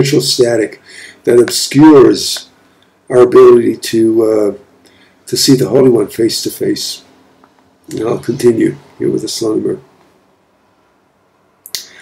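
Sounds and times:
mouth click: 11.6 - 12.0.

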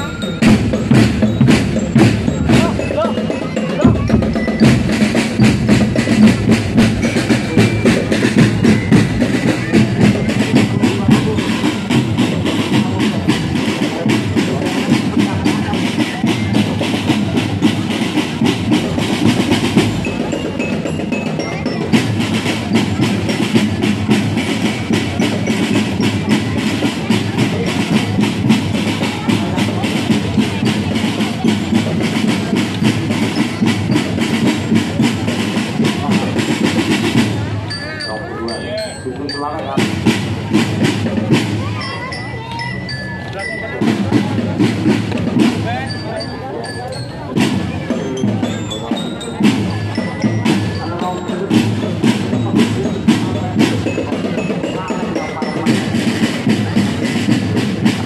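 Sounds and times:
marching drums rhythm: 0.0 - 58.0.

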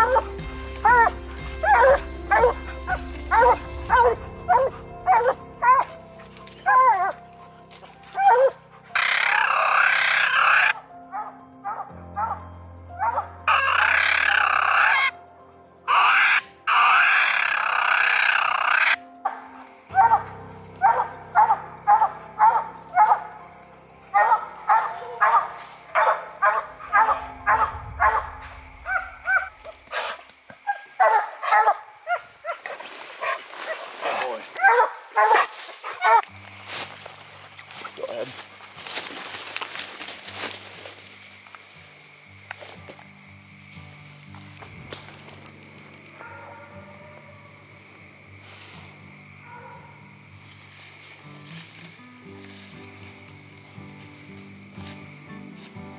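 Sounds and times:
hounds barking rapidly: 0.0 - 5.9, 8.1 - 12.4, 13.0 - 15.1, 15.9 - 19.0, 19.9 - 23.4, 24.1 - 36.2, 46.2 - 47.5, 49.4 - 50.0.

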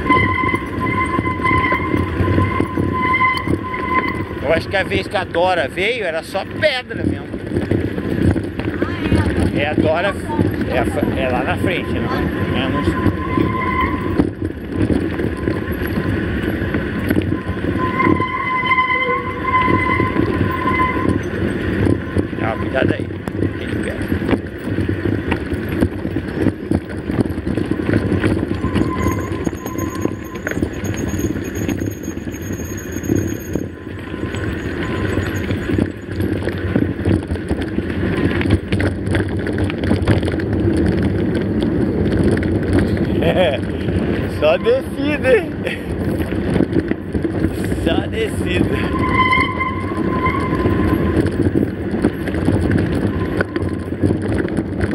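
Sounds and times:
bike rattling: 0.0 - 54.9
wind on microphone: 0.0 - 54.9.

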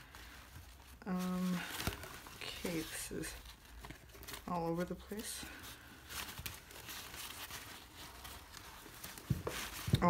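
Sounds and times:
faint crinkles: 0.0 - 10.0
nylon bag rustling: 0.0 - 10.0.

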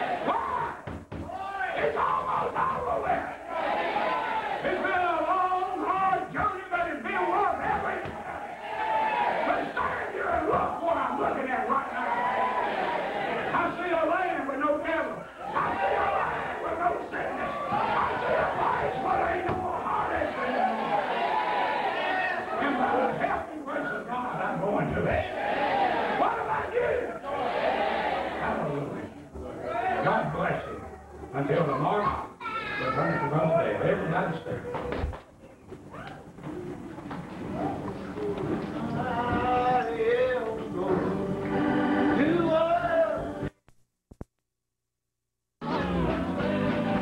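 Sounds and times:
congregation voices: 0.0 - 43.5
preacher shouting sing-song: 15.4 - 23.2
music: 38.0 - 43.6, 45.6 - 47.0.

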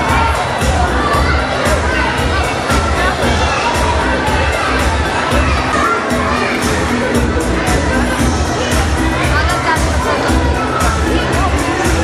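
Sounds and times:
crowd babble: 0.0 - 12.0
music playing: 0.0 - 12.0.

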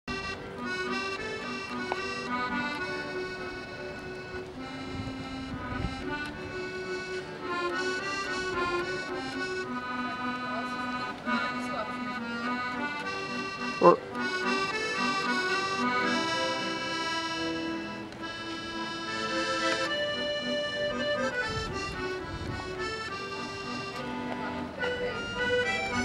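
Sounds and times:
accordion playing: 0.1 - 26.0
short loud voice sound: 13.8 - 14.0.

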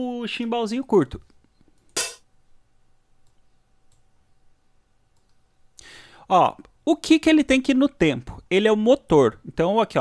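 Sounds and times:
faint mouse clicks: 3.2 - 4.1, 5.1 - 5.4.

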